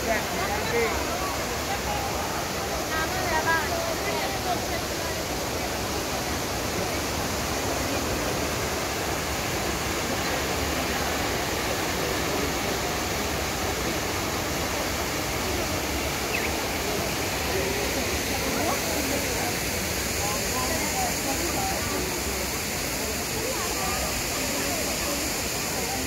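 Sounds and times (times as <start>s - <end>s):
crowd chatter: 0.0s - 26.0s
fountain water rushing: 0.0s - 26.0s.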